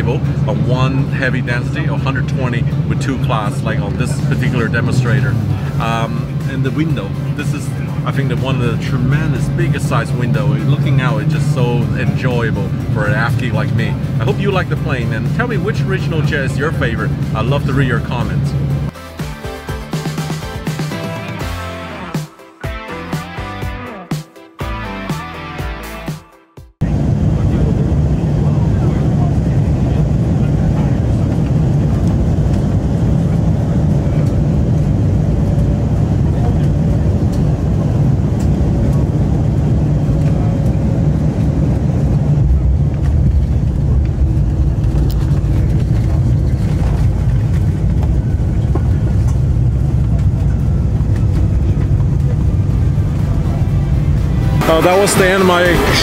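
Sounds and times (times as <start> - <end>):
airplane cabin noise on runway: 0.0 - 18.9, 26.8 - 56.0
music: 0.0 - 26.8, 51.4 - 56.0.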